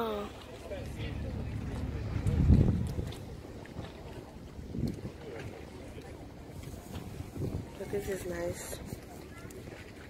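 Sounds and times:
faint voices of people: 0.0s - 10.0s
wind rumbling on microphone: 0.8s - 10.0s.

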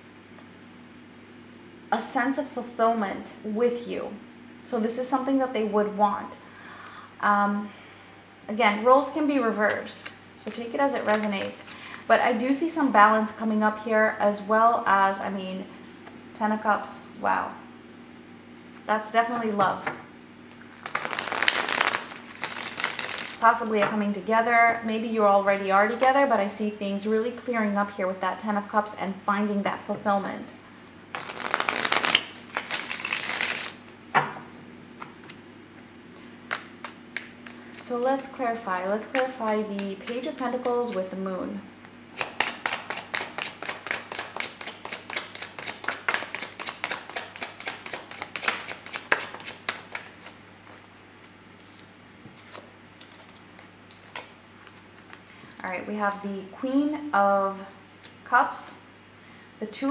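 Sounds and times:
cards being shuffled: 9.5s - 11.6s, 20.5s - 23.4s, 31.1s - 33.9s, 35.0s - 41.1s, 42.2s - 55.3s.

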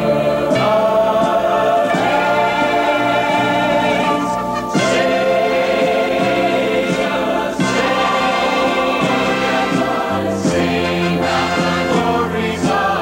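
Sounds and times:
choir singing: 0.0s - 13.0s
instrumental accompaniment: 0.0s - 13.0s.

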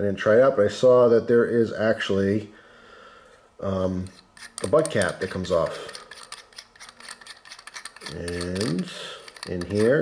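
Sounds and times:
faint rubbing: 3.8s - 10.0s.

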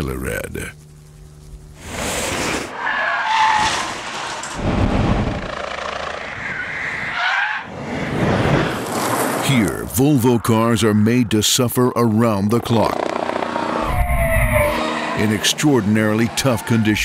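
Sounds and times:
tyres skidding and squealing: 2.3s - 4.6s, 5.6s - 9.4s, 13.1s - 17.0s
cars passing fast: 13.1s - 16.9s.

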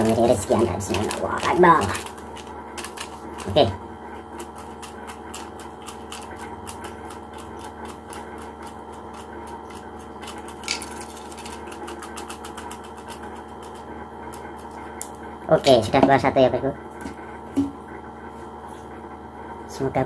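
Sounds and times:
paper slips rattling in plastic bottle: 0.0s - 3.7s, 4.3s - 14.7s.

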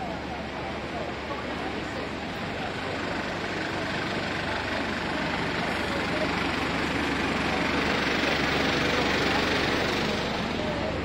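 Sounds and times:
passers-by talking: 0.0s - 11.0s
road traffic rushing: 0.0s - 11.0s.

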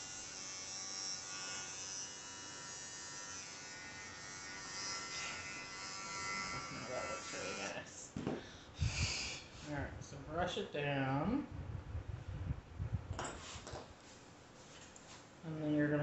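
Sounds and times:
electric clippers buzzing: 0.0s - 7.9s, 8.8s - 9.4s.

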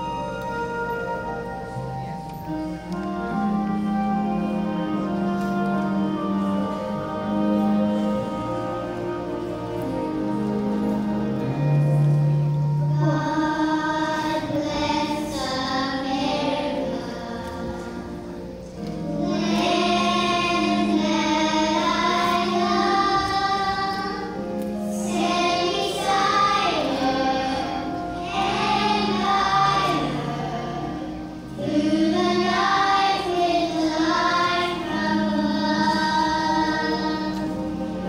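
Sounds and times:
musical accompaniment: 0.0s - 38.0s
young children singing: 0.0s - 38.0s
girl singing into microphone: 12.9s - 38.0s.

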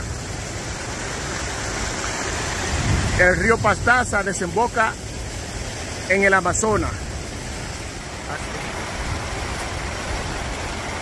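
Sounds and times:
rushing water: 0.0s - 11.0s.

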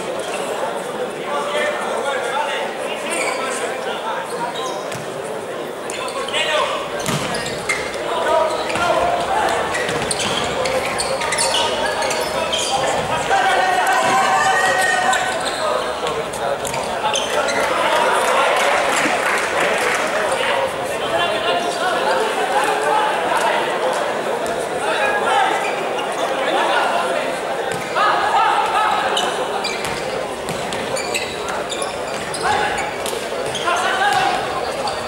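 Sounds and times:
players shouting: 6.0s - 35.0s.

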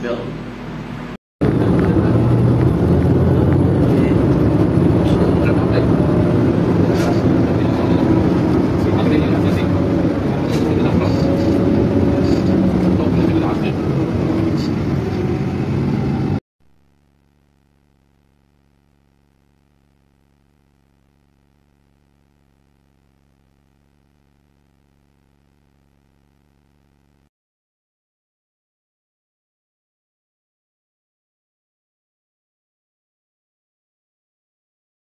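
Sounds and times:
bus engine and road rumble: 0.0s - 16.4s.

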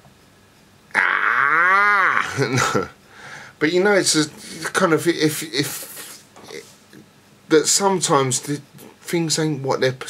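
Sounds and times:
man's sliding vocal sound: 0.9s - 2.6s.

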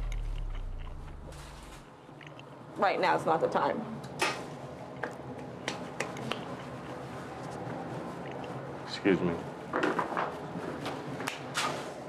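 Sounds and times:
low steady hum: 0.0s - 8.9s.

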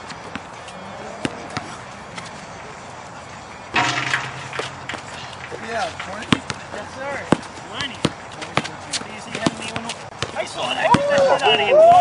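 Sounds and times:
loud bang: 3.8s - 5.8s
basketball bouncing on concrete: 3.8s - 11.4s.

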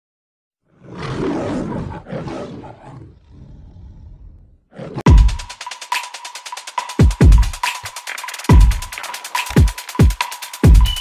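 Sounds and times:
loud roar: 0.7s - 5.1s.

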